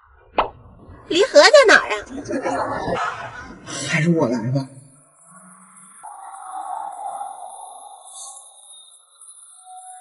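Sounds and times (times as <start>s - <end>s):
faint steady high tone: 4.6s - 10.0s.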